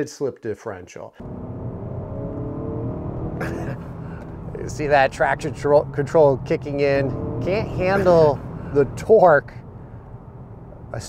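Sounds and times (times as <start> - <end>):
car engine and road rumble: 1.2 - 11.0.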